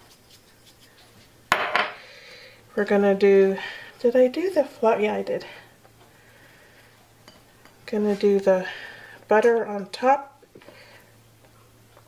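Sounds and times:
shaker knocking on countertop: 1.5s - 2.0s.

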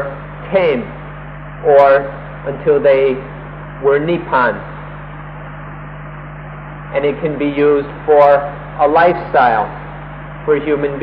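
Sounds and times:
tape hum and hiss: 0.0s - 11.0s.

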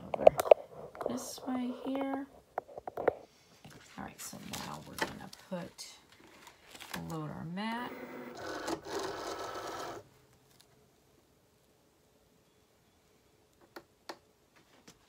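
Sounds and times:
foil sheet rustling and crinkling: 6.2s - 7.1s.

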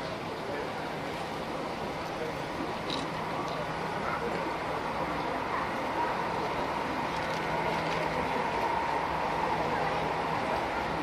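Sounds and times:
murmur of large crowd: 0.0s - 11.0s.

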